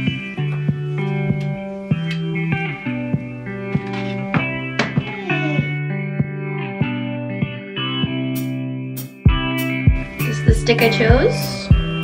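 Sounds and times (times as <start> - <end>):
guitar music: 0.0 - 12.0.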